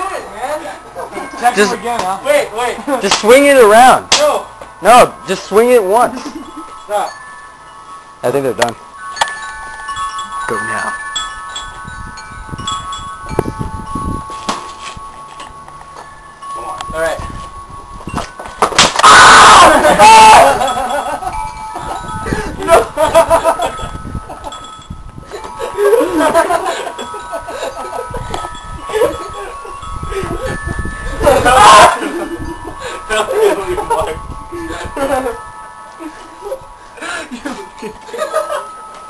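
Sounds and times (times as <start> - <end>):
wind chimes ringing: 0.0 - 39.0.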